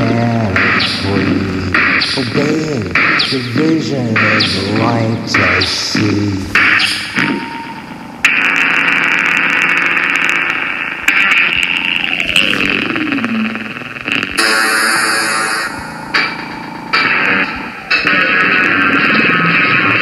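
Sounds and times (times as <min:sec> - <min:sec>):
hissing synthesized noise: 0:00.0 - 0:20.0.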